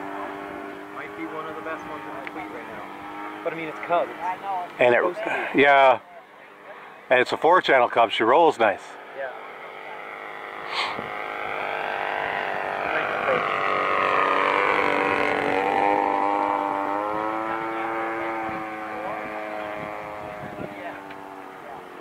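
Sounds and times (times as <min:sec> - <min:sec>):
model airplane motor droning: 0:00.0 - 0:22.0.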